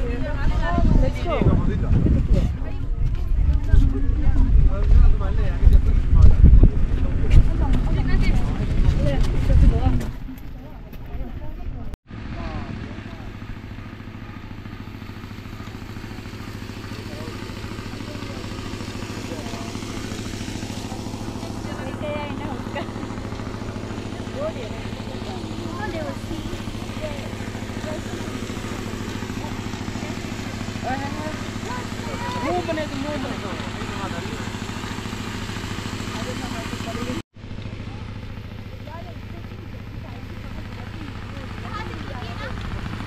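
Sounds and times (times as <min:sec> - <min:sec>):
engine idling: 0:06.6 - 0:43.0.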